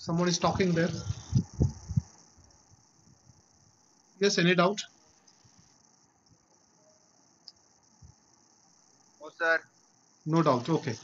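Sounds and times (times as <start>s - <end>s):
faint steady hiss: 0.0s - 11.0s.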